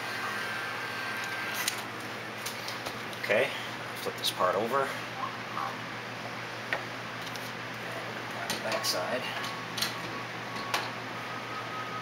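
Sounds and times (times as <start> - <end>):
shop background hiss and hum: 0.0 - 12.0.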